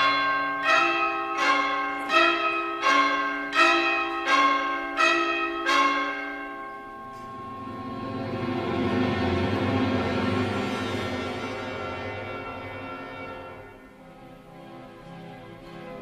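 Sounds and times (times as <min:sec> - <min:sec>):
low held orchestral sound: 0:00.0 - 0:16.0
orchestral bells ringing: 0:00.0 - 0:16.0.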